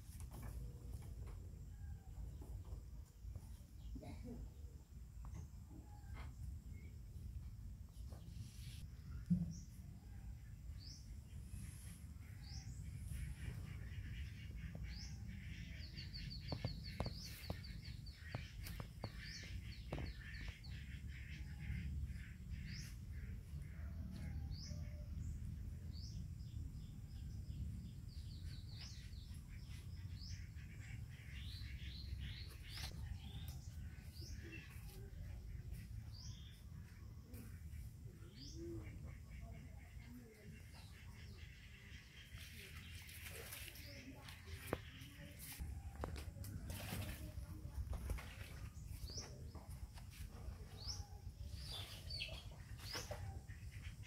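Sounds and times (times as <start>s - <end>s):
small birds chirping: 6.7s - 54.0s.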